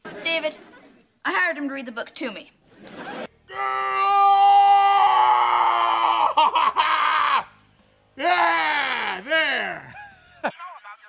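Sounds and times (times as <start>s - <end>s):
man screaming: 3.5s - 7.6s, 8.2s - 10.0s.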